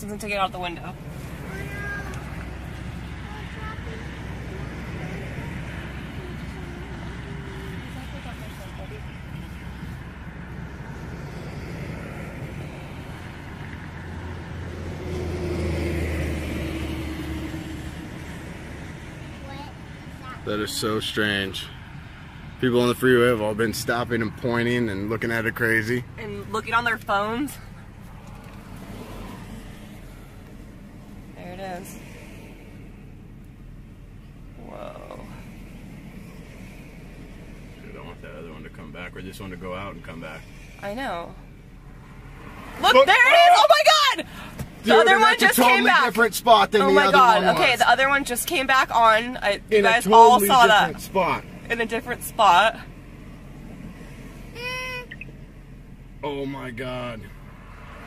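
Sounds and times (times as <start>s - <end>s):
car engine and road hum: 0.0s - 58.0s
low rumble of traffic: 0.0s - 58.0s.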